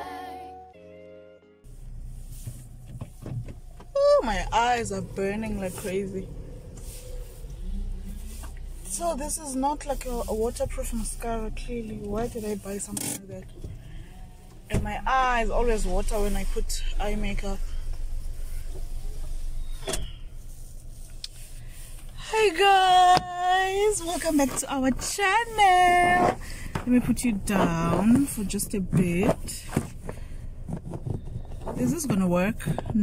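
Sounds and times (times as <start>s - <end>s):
car cabin rumble: 1.7s - 33.0s.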